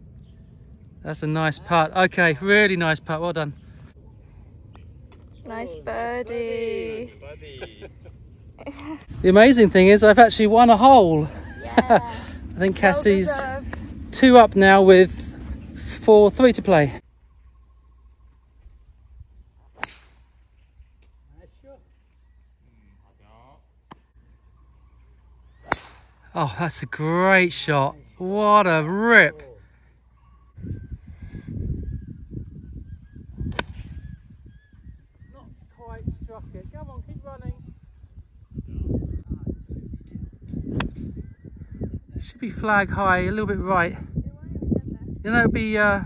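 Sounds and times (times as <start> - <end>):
wind rumble on microphone: 3.6 - 17.0, 30.4 - 46.0
golf club striking ball: 19.7 - 20.4, 25.6 - 26.2.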